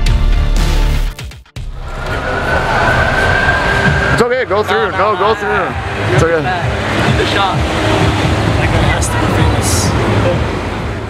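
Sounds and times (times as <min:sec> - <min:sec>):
background music: 0:00.0 - 0:11.0
high-pitched whine: 0:01.6 - 0:11.0
street noise: 0:01.6 - 0:11.0.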